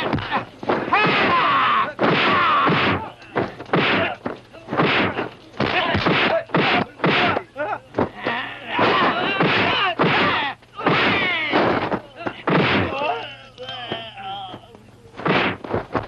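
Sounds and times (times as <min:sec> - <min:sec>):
punch impacts: 0:00.0 - 0:08.2, 0:08.8 - 0:13.0, 0:15.2 - 0:16.0
men shouting and grunting: 0:00.0 - 0:14.2.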